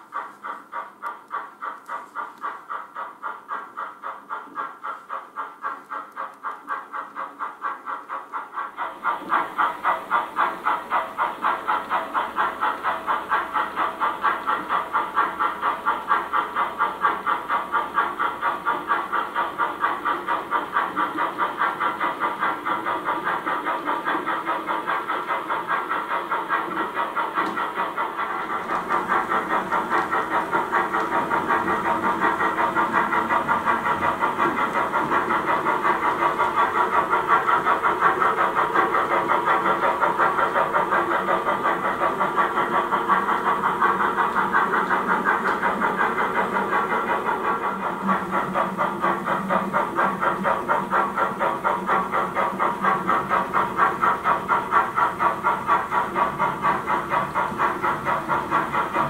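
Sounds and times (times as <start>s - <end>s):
model steam locomotive chuffing: 0.0s - 59.0s.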